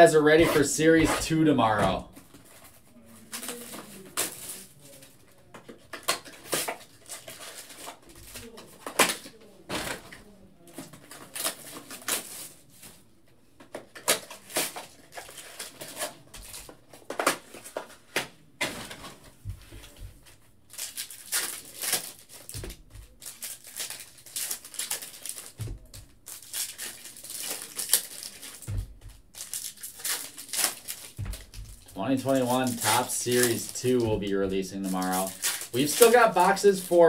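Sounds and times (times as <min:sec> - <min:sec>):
cards rustling and clicking: 0:00.4 - 0:13.0, 0:13.6 - 0:37.0
foil wrappers crinkling and tearing: 0:02.3 - 0:10.2, 0:10.8 - 0:12.8, 0:13.8 - 0:18.0, 0:20.7 - 0:37.0.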